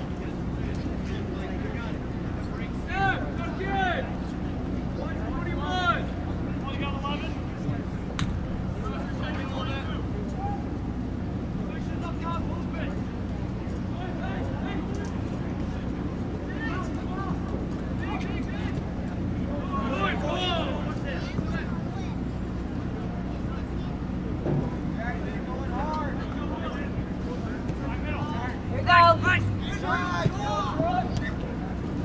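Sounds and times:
players shouting: 0.0s - 32.0s
steady low hum: 0.0s - 32.0s.

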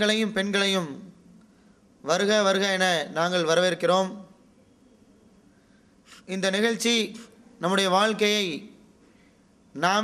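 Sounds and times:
man speaking through microphone: 6.3s - 8.7s.

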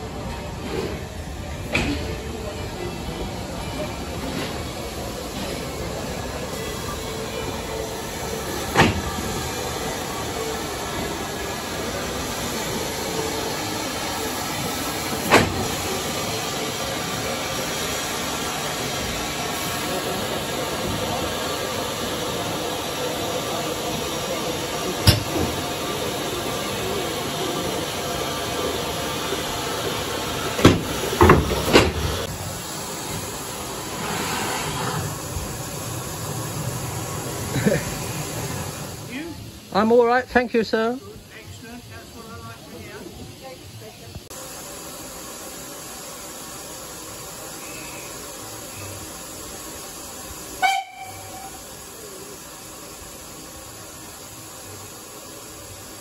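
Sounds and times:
steam locomotive hissing: 0.0s - 56.0s.

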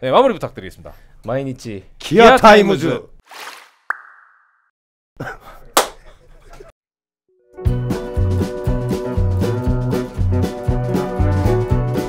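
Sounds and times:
quiet laughter: 5.2s - 6.8s
hand clap: 5.8s - 6.0s.

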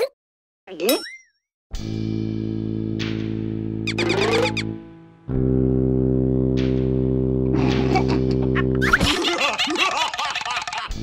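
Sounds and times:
background music chord: 1.8s - 8.8s
cartoon character laughter: 7.6s - 11.0s.

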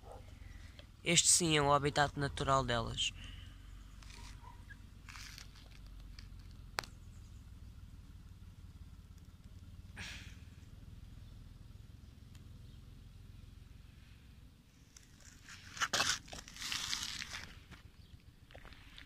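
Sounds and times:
low steady rumble: 0.0s - 19.0s
rustles on dry ground: 3.9s - 7.0s, 14.8s - 19.0s.

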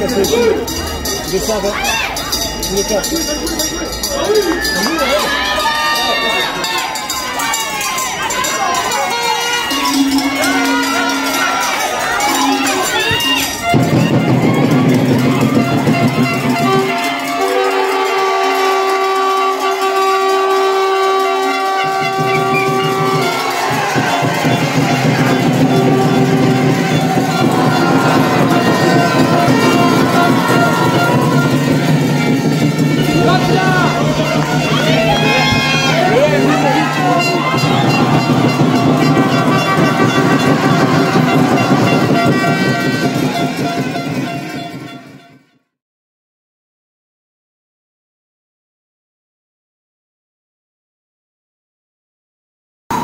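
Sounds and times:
spectators shouting and cheering: 0.0s - 45.4s
music with pulsing beat: 22.0s - 45.2s.

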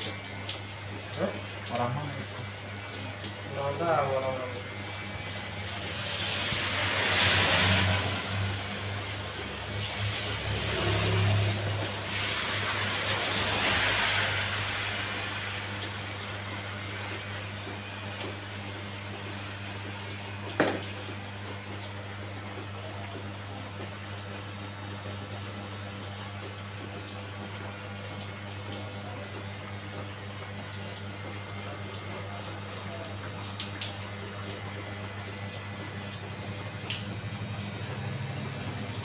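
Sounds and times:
electric hair clipper humming: 20.2s - 21.0s.

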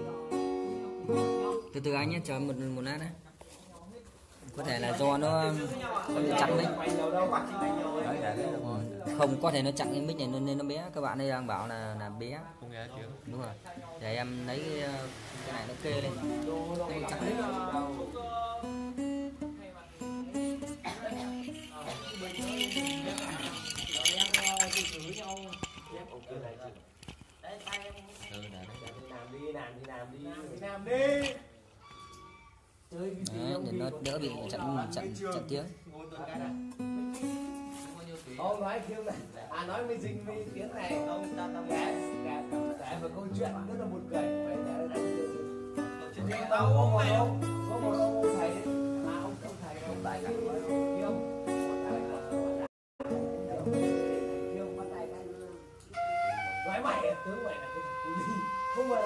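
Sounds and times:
acoustic guitar chords: 0.0s - 1.7s, 17.1s - 21.8s, 43.4s - 56.4s
soft acoustic guitar: 0.0s - 59.0s.

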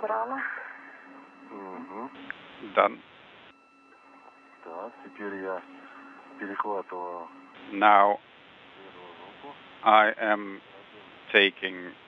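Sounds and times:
steady electronic hum: 0.0s - 12.0s
voice over radio: 1.5s - 3.0s, 4.7s - 8.2s, 8.8s - 11.9s.

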